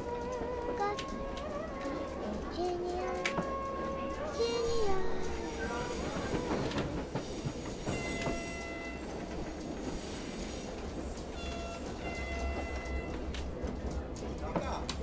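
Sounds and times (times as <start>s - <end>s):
train low rumble: 0.0s - 15.0s.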